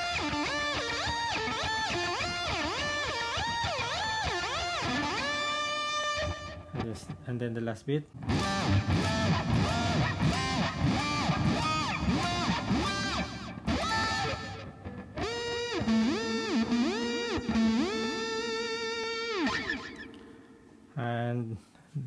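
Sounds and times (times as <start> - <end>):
electric guitar with pitch-shift effect: 0.0 - 7.5, 8.2 - 20.9.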